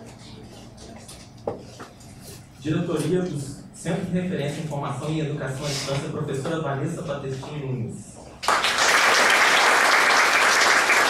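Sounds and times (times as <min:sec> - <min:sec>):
audience murmur and shuffling: 0:00.0 - 0:03.2.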